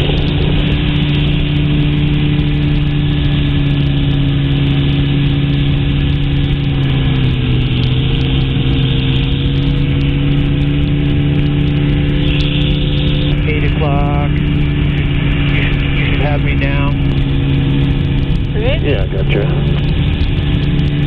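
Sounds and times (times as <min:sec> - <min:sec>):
aircraft engine droning: 0:00.0 - 0:21.0
rushing wind: 0:00.0 - 0:21.0.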